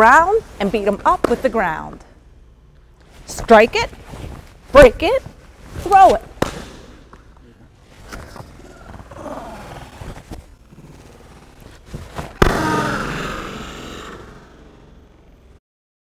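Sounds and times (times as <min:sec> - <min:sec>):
slaps and scuffs on mats: 0:05.2 - 0:07.2.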